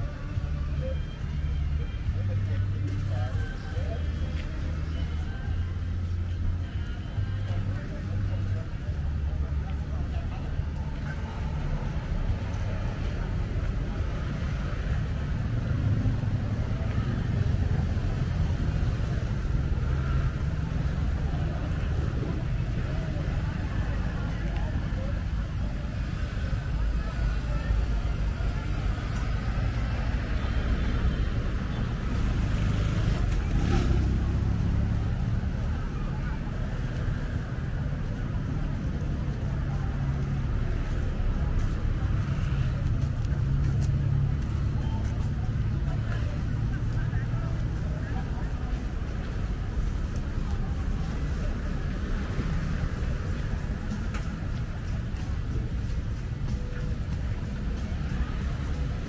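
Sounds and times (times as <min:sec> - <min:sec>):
cars and motorbikes passing: 0:00.0 - 0:59.0.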